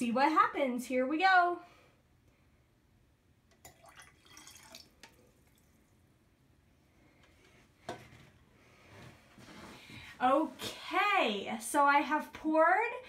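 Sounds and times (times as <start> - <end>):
liquid trickling into glass: 3.5 - 5.8.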